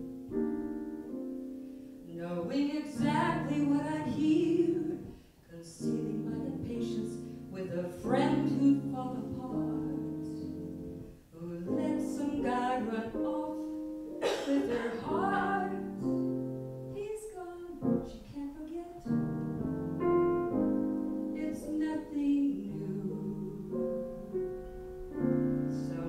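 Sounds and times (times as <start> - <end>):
grand piano: 0.0 - 26.0
woman singing a ballad: 2.0 - 19.3, 21.2 - 24.0, 25.7 - 26.0.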